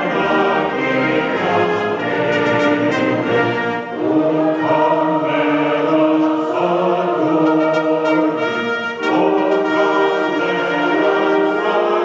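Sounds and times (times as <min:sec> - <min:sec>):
mixed choir singing: 0:00.0 - 0:12.0.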